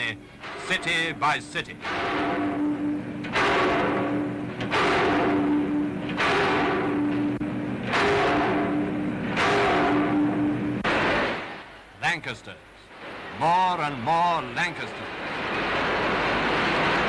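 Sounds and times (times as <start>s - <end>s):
power press thudding: 0.0s - 11.9s
machine hum: 0.0s - 17.0s.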